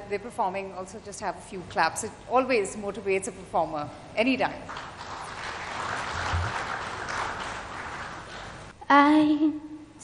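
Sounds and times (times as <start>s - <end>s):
audience applauding: 4.7s - 8.7s.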